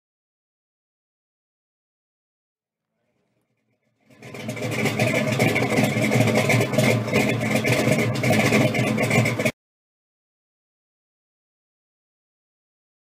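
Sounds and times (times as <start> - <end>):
engine running steadily: 2.9 - 9.5.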